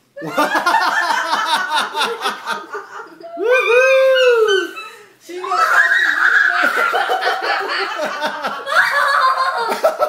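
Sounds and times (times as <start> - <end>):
long howling cry: 3.4 - 6.7.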